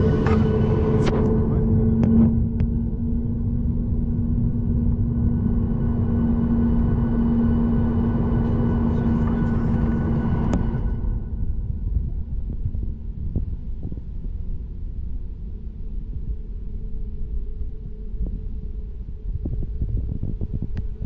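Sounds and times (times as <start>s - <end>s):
jet engines rumbling in cabin: 0.0s - 15.1s.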